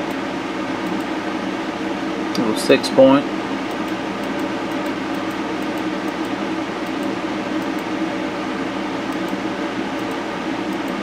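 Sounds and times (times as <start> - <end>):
fan whirring: 0.0 - 11.0.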